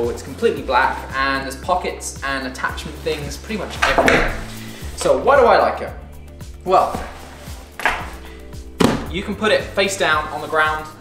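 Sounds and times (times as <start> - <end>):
background music: 0.0 - 11.0
backpack rustling: 2.9 - 5.3, 6.2 - 9.3
bag thumping on table: 7.8 - 9.1.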